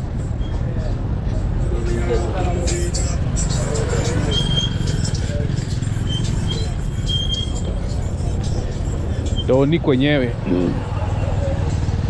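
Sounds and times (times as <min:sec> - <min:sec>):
low street rumble: 0:00.0 - 0:12.0
faint distant voices: 0:00.1 - 0:12.0.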